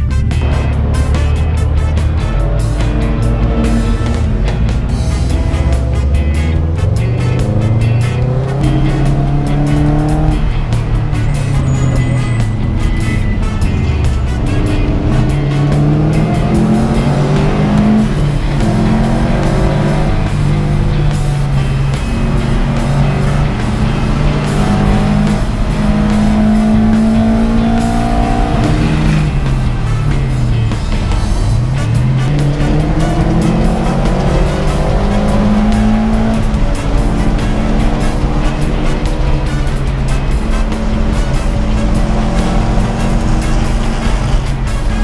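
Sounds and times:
car engine revving: 0:00.0 - 0:45.0.

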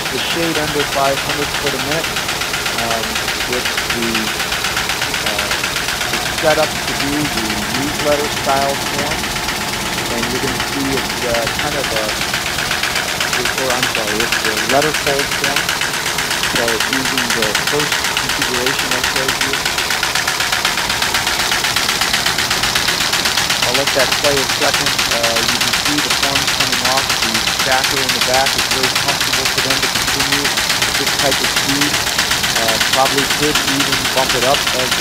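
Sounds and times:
finishing line machine clattering: 0:00.0 - 0:35.0.

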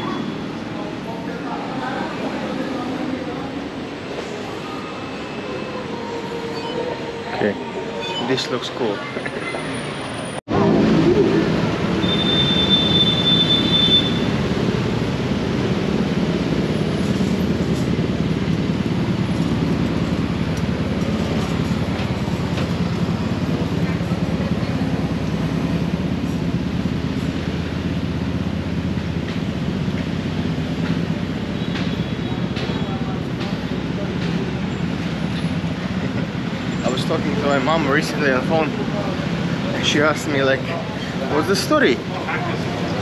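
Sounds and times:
motorbikes and cars passing: 0:08.7 - 0:43.0.

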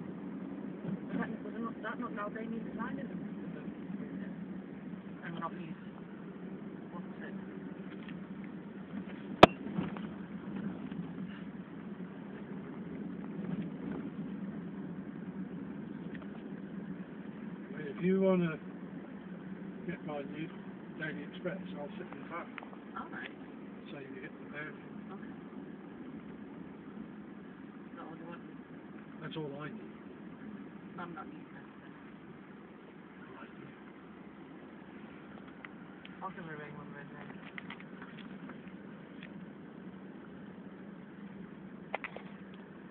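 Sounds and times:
car engine and road noise: 0:00.0 - 0:42.9.

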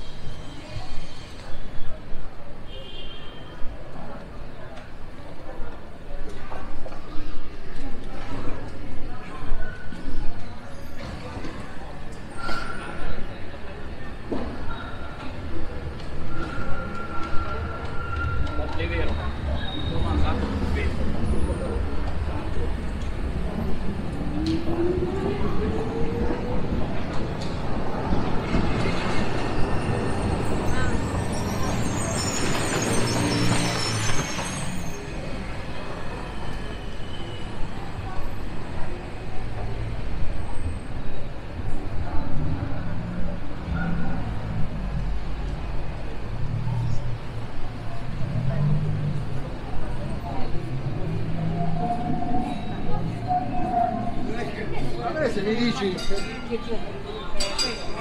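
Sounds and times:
chatter of passers-by: 0:00.0 - 0:58.0
traffic: 0:00.0 - 0:58.0
tram running: 0:03.6 - 0:58.0.

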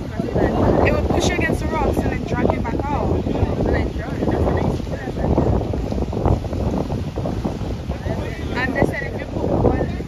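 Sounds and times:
waves breaking on rocks: 0:00.0 - 0:10.0
wind buffeting microphone: 0:00.0 - 0:10.0.

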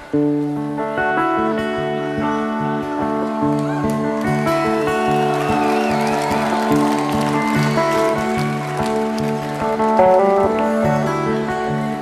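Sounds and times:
fingerpicked electric guitar lead: 0:00.0 - 0:12.0.

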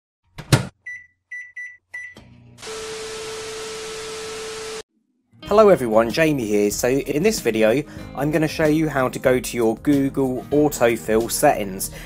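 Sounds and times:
short keypad beeps: 0:00.9 - 0:02.2.

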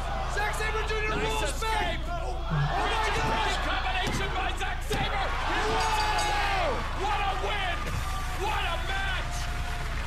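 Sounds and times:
indistinct voices: 0:00.6 - 0:06.4.

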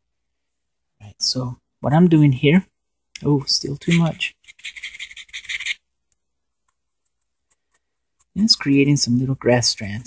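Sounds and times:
brush rubbing on painted surface: 0:03.8 - 0:05.8.

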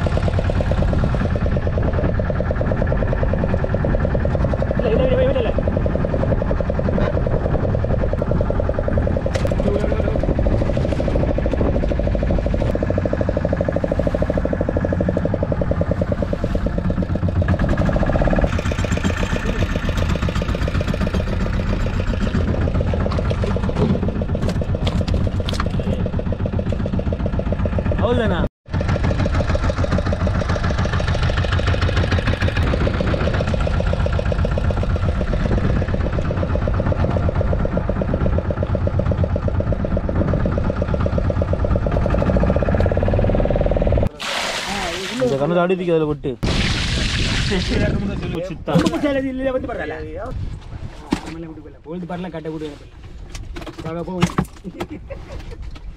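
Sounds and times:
boat engine running: 0:00.0 - 0:55.9
men's voices: 0:47.0 - 0:50.4.

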